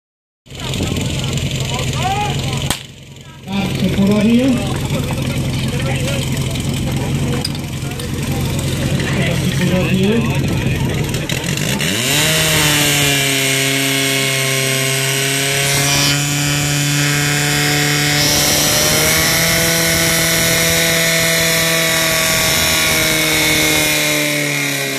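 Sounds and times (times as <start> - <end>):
fire pump engine droning: 0.5 - 24.9.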